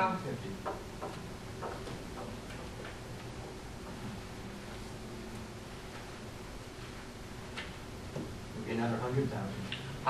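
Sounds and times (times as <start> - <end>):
meeting room hum: 0.0 - 10.0
faint clicks and taps: 0.6 - 4.2.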